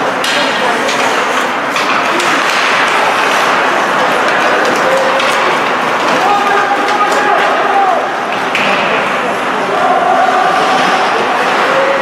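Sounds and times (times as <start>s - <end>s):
spectator chatter: 0.0s - 12.0s
skating on ice: 0.8s - 7.8s.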